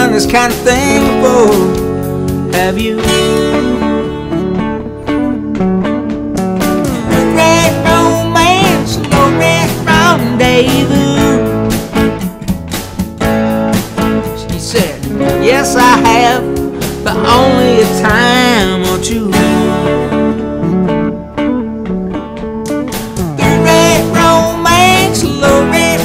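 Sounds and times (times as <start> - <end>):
steady drum beat: 0.0 - 3.9, 5.6 - 20.9, 21.8 - 26.0
bending lead melody: 0.0 - 26.0
twelve-string acoustic guitar: 0.0 - 26.0.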